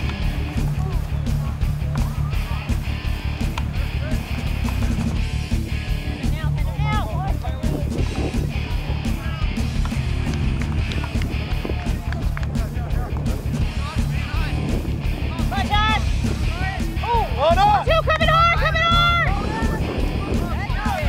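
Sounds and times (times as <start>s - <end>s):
background music with steady beat: 0.0s - 21.0s.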